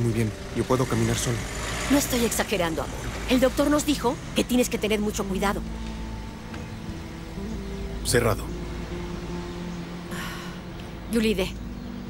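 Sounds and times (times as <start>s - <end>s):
low outdoor rumble: 0.0s - 12.0s
soft background music: 0.0s - 12.0s.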